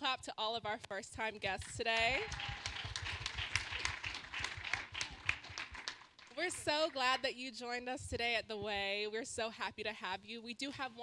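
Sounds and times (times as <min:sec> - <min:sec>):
voices: 0:00.0 - 0:02.4, 0:06.4 - 0:11.0
congregation applauding: 0:01.9 - 0:07.2.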